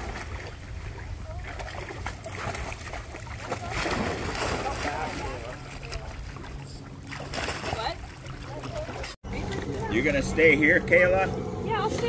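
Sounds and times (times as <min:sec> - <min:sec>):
dog splashing through water: 0:00.0 - 0:09.9.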